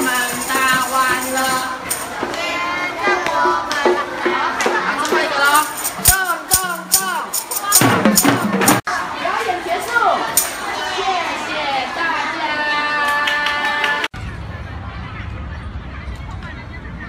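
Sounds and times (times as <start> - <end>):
music with singing: 0.0 - 8.8, 13.9 - 17.0
tambourines jingling and struck: 0.0 - 8.9, 10.2 - 10.7.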